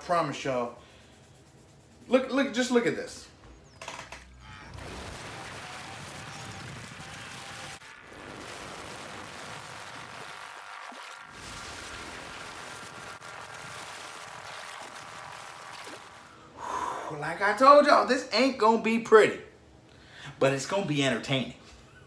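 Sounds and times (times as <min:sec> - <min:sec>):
water splashing and churning: 0:04.7 - 0:16.4.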